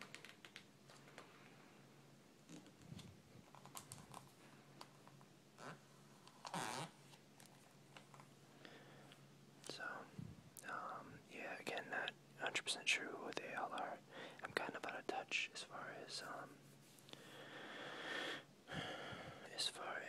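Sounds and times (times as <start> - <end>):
whispered speech: 9.7 - 16.6, 19.5 - 20.0.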